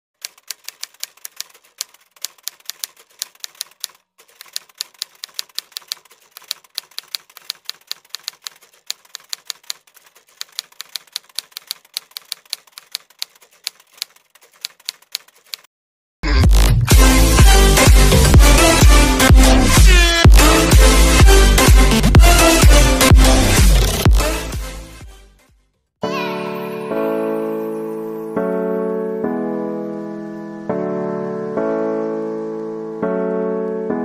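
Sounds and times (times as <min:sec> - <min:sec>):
typewriter key clacks: 0:00.2 - 0:15.7.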